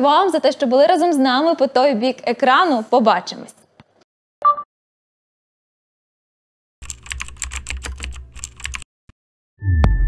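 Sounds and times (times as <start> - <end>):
keyboard key clicks: 6.8 - 8.8.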